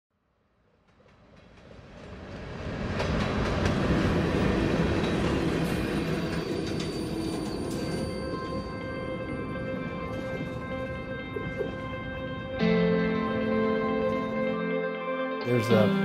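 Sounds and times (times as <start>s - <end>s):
freight train rolling past: 0.5s - 14.7s
railcars clanking: 0.8s - 14.5s.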